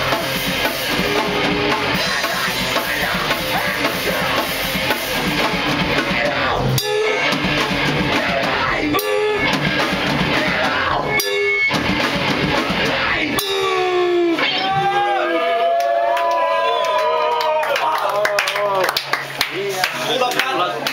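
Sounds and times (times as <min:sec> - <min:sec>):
loud drums and electric guitar: 0:00.0 - 0:15.8.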